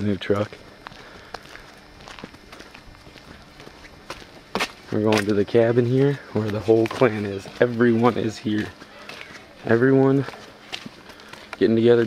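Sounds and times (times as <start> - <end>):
footsteps on pavement: 0.2 - 12.0.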